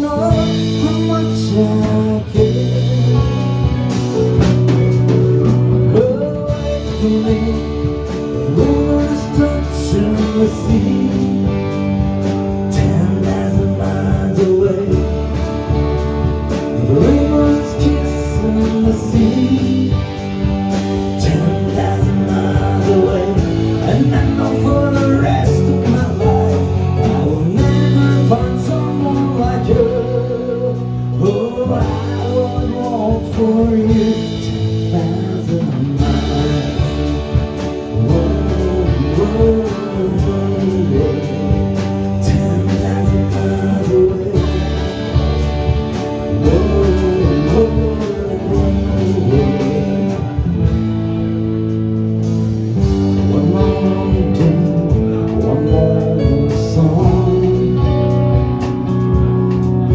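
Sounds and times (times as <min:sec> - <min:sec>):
electric lead guitar melody: 0:00.0 - 0:59.9
live rock band playing: 0:00.0 - 0:59.9.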